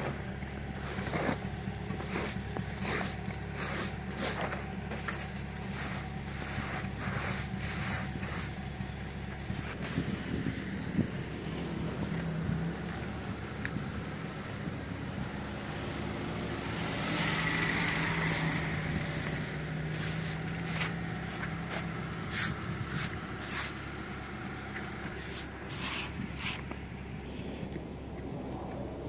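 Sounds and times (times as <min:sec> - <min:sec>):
brush sweeping snow: 0:00.0 - 0:08.6, 0:09.5 - 0:11.0, 0:14.3 - 0:16.0, 0:17.8 - 0:23.9, 0:25.1 - 0:26.8
low engine hum: 0:00.0 - 0:29.0.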